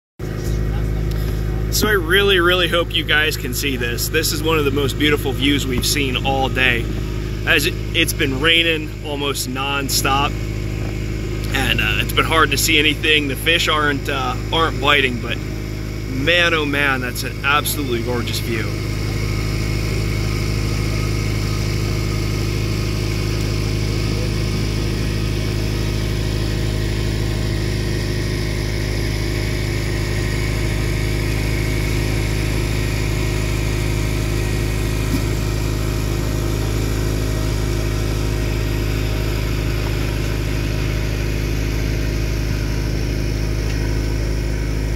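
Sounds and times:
boat engine droning: 0.2 - 44.9.

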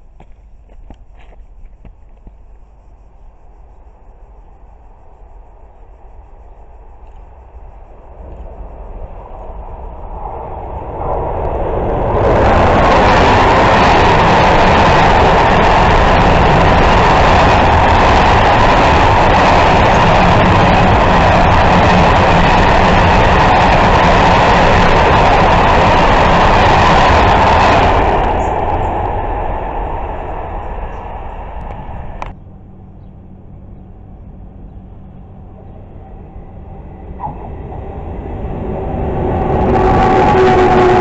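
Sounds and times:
train wheels rolling on rail: 0.0 - 32.4, 35.0 - 41.0.

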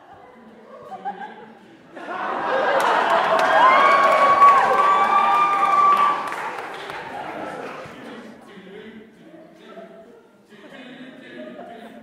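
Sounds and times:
audience clapping and cheering: 2.5 - 8.1.

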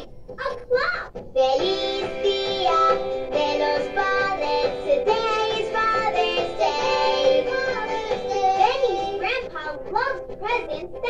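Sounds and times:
backing music: 0.0 - 11.0
child singing: 0.4 - 11.0.

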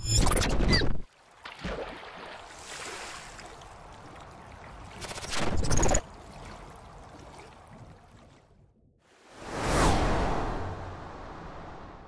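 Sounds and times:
cinematic whoosh: 9.2 - 12.0
deep rumble: 9.4 - 12.0.

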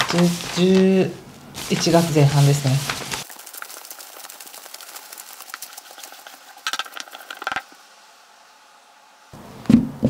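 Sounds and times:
cards rustling on tabletop: 0.0 - 1.0, 1.6 - 7.7.

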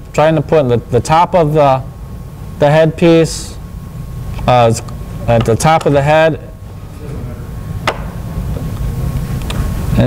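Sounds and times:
low handling rumble: 3.6 - 10.0.

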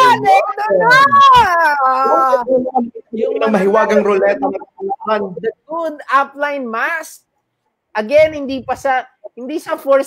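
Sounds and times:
man yelling excitedly: 0.0 - 2.5.

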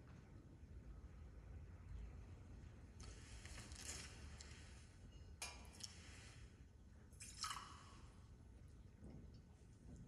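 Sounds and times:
water trickling and splashing: 7.2 - 8.2.

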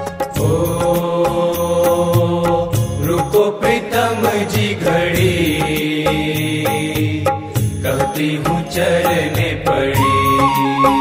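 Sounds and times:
person singing devotional song: 0.2 - 11.0
instrumental backing: 10.0 - 11.0.

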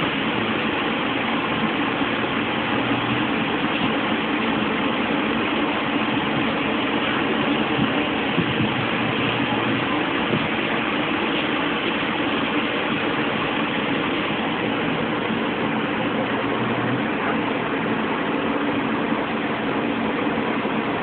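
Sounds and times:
mechanical hum and hiss: 0.0 - 21.0.

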